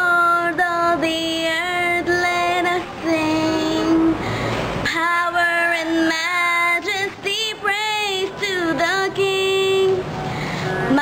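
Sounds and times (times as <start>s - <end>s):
girl singing: 0.0s - 4.2s, 4.8s - 10.1s.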